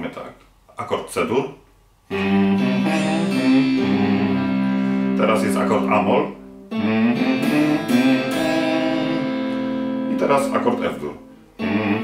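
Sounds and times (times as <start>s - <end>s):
clean electric guitar notes: 2.1s - 12.0s.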